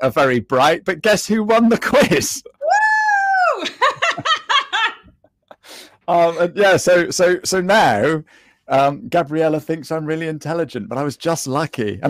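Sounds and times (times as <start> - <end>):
person laughing: 3.6 - 6.6.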